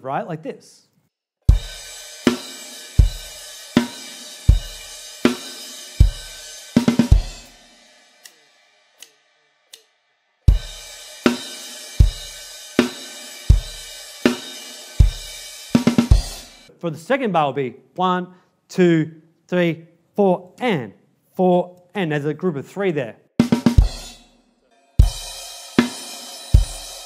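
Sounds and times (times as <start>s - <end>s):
drum kit rock groove: 1.5s - 8.4s, 10.5s - 16.7s, 23.4s - 24.4s, 25.0s - 27.0s
crash cymbal ringing: 1.6s - 9.3s, 24.0s - 27.0s.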